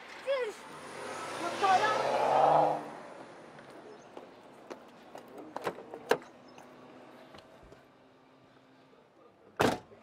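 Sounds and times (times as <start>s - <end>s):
car passing by: 0.5s - 3.5s.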